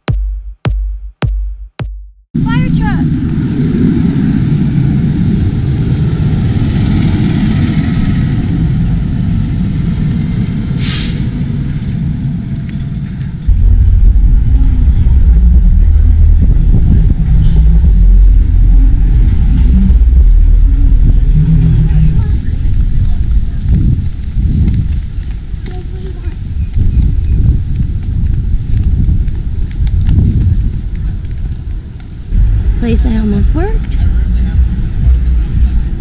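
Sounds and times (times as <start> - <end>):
street traffic noise: 2.4 - 36.0
wind buffeting microphone: 2.4 - 36.0
sharp hiss: 10.8 - 11.4.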